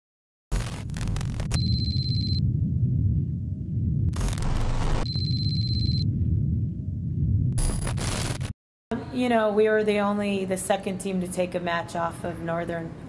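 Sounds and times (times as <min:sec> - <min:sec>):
glitchy static bursts: 0:00.5 - 0:01.8, 0:04.1 - 0:05.1, 0:07.6 - 0:08.5
high electronic tone: 0:00.6 - 0:02.4, 0:04.2 - 0:06.1
steady low rumble: 0:00.6 - 0:08.5.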